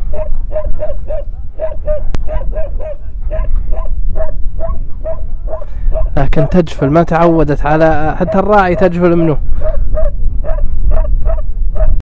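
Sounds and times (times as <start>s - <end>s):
wind rumble on microphone: 0.0s - 12.0s
dog barking: 0.1s - 6.7s, 8.2s - 12.0s.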